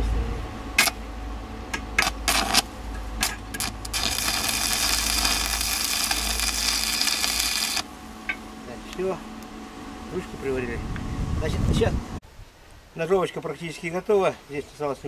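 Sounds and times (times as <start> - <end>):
electric arc welding crackle: 0.8 - 1.0, 2.0 - 7.9.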